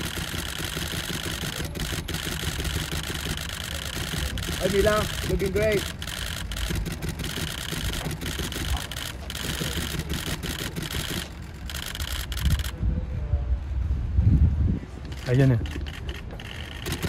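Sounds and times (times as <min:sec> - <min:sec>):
camera shutters clicking: 0:00.0 - 0:12.8, 0:15.0 - 0:17.0
idling engines rumble: 0:00.0 - 0:12.8, 0:14.9 - 0:17.0.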